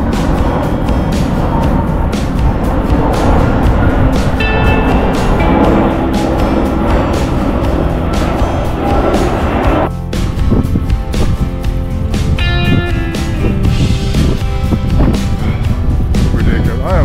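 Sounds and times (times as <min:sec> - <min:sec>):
background music: 0:00.0 - 0:17.0
jet aircraft roaring overhead: 0:00.0 - 0:17.0.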